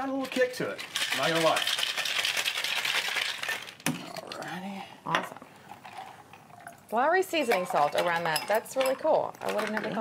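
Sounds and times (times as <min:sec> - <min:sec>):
ice rattling in cocktail shaker: 0:00.1 - 0:03.9, 0:07.5 - 0:10.0.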